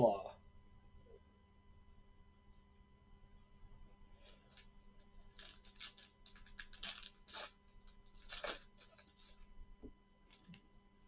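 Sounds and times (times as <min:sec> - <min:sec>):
cards rustling and scraping: 0:04.2 - 0:09.5, 0:10.2 - 0:10.6.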